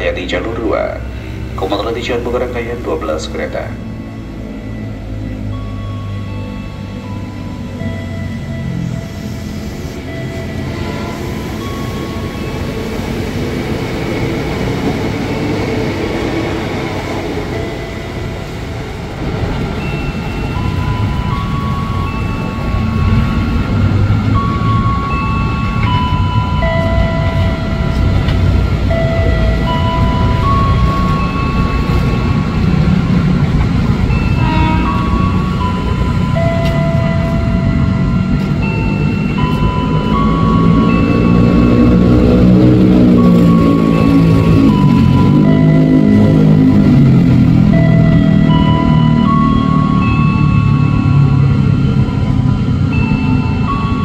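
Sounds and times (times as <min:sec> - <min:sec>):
electric train running: 0:00.0 - 0:54.0
slow tune of held notes: 0:00.0 - 0:54.0
train motors humming: 0:00.0 - 0:54.0
train rumbling in: 0:00.0 - 0:54.0.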